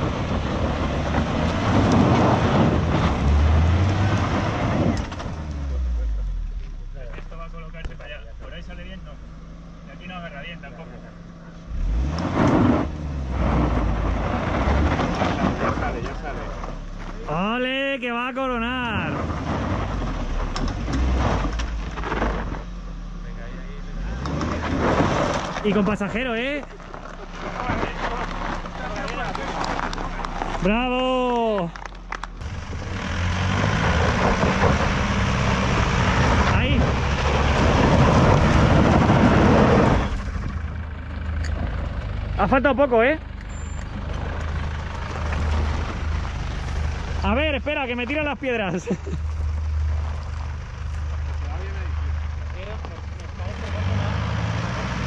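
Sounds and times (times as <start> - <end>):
car engine under load: 0.0 - 55.0
indistinct voices: 23.2 - 33.6
tyres scrabbling on gravel: 24.2 - 40.7, 43.4 - 54.2.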